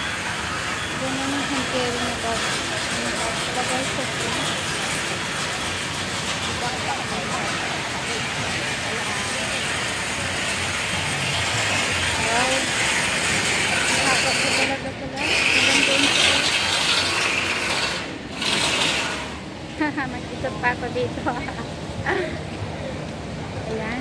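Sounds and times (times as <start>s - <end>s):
voices: 0.0s - 16.8s, 19.7s - 24.0s
crowd and street noise: 0.0s - 24.0s.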